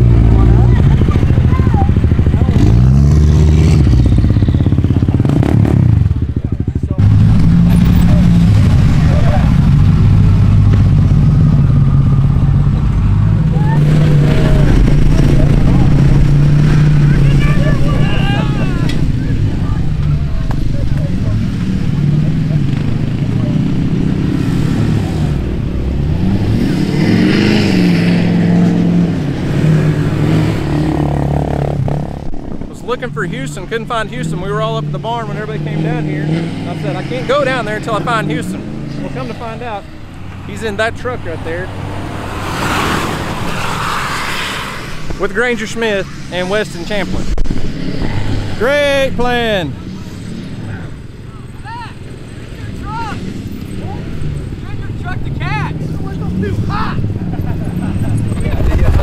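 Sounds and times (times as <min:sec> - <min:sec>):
people's voices: 0:00.0 - 0:24.6, 0:32.6 - 0:42.4, 0:45.0 - 0:59.0
pickup truck engine revving: 0:00.0 - 0:59.0.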